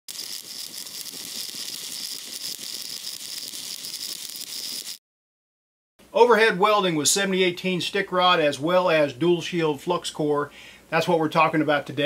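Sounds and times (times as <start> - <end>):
welding arc crackling: 0.0 - 5.0.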